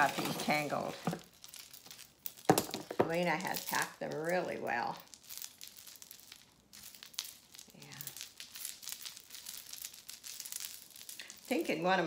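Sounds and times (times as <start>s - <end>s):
beaded chain clicking and rustling: 0.0s - 12.0s.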